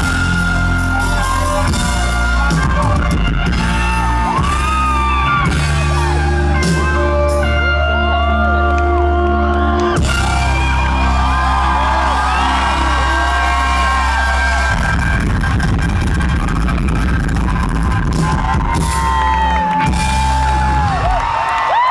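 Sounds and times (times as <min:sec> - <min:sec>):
sustained low bass: 0:00.0 - 0:19.2
crowd whooping and screaming: 0:00.0 - 0:21.9
drums: 0:00.0 - 0:21.9
electric guitar: 0:00.0 - 0:21.9.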